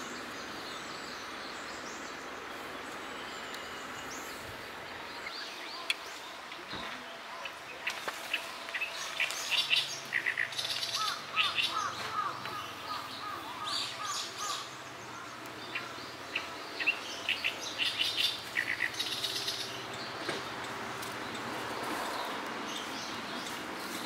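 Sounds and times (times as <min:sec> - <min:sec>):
birds chirping and singing: 0:00.0 - 0:24.0.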